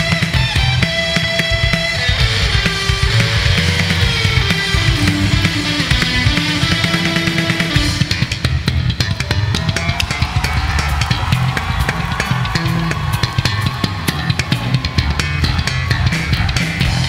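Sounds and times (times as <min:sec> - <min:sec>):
drum kit playing fast: 0:00.0 - 0:17.0
electric bass guitar: 0:00.0 - 0:17.0.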